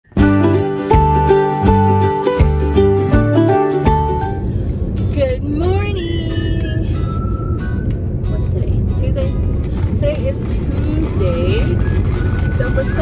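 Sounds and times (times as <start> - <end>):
background music: 0.0 - 13.0
car road noise: 0.0 - 13.0.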